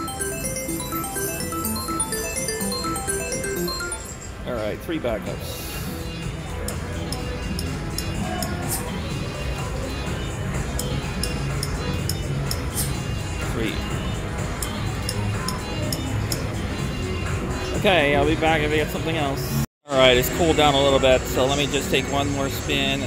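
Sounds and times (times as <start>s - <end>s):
slot machine music and effects: 0.0s - 4.8s.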